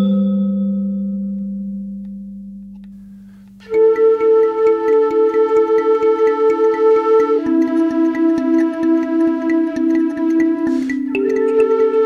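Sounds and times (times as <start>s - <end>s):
low ringing bell-like note: 0.0s - 2.5s.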